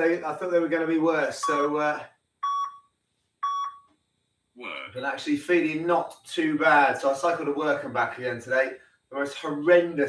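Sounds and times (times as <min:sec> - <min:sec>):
short timer beeps: 0:02.4 - 0:03.9.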